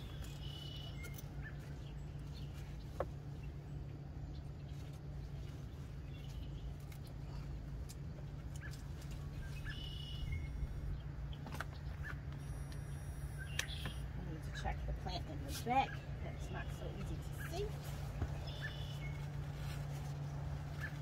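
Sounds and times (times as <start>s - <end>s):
bird chirps: 0.0s - 3.6s, 8.5s - 14.8s, 15.7s - 19.4s
leaves and stems rustling: 0.0s - 12.4s, 13.7s - 21.0s
steady low hum: 0.0s - 21.0s.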